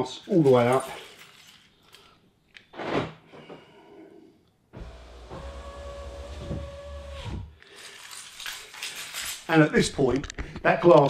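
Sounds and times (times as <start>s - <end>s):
electric window motor whine: 4.8s - 7.5s.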